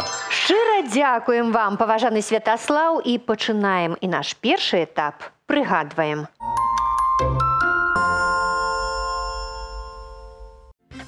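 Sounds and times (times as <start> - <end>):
jingle closing chord: 6.4 - 10.7.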